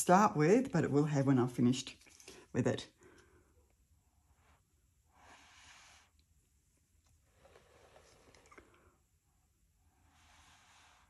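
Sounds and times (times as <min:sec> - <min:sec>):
breath puffs through paper straw: 0:05.0 - 0:06.3, 0:07.2 - 0:08.7, 0:09.9 - 0:11.0.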